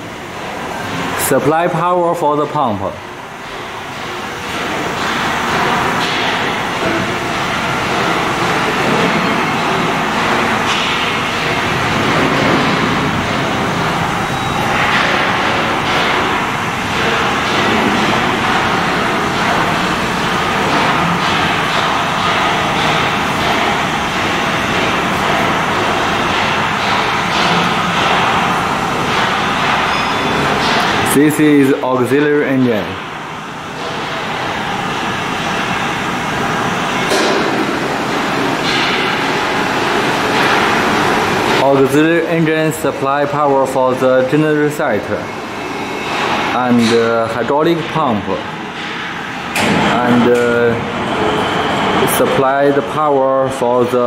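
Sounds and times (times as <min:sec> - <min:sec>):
diesel machinery running: 0:00.0 - 0:54.0.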